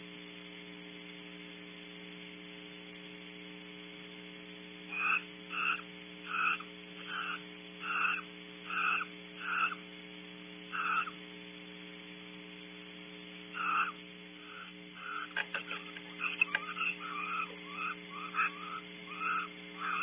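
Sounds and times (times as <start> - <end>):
steady electrical hum: 0.0 - 20.0
frog croaking: 4.9 - 9.9, 10.7 - 11.2, 13.5 - 20.0.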